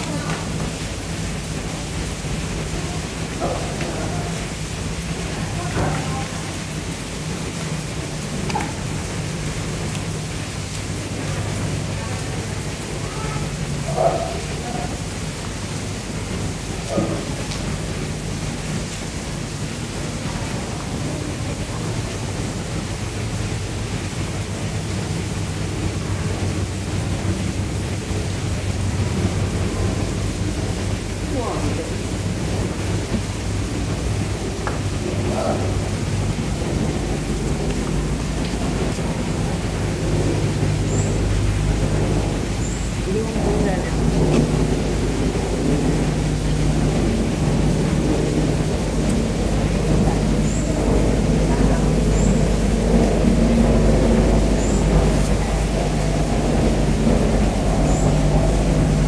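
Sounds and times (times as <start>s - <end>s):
constant hum: 0.0s - 59.0s
faint voices: 11.5s - 15.4s, 29.7s - 59.0s
low rumble: 14.6s - 59.0s.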